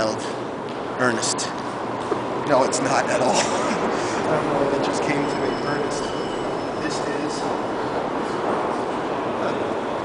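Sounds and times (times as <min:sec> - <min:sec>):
indistinct distant voices: 0:03.2 - 0:10.0.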